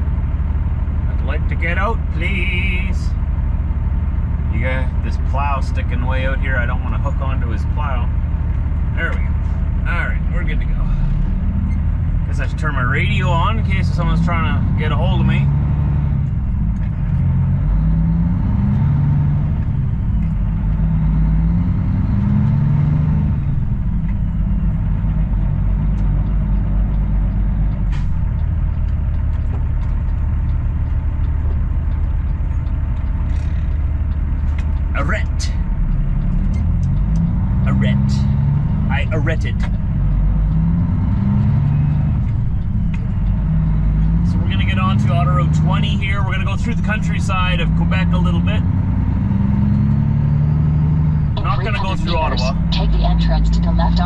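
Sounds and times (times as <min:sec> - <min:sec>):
truck diesel engine shifting gears: 0:00.0 - 0:54.0.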